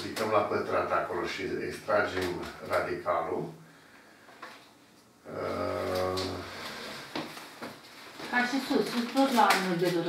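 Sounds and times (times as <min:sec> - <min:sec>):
man's voiced hesitation sound: 0:05.3 - 0:06.5.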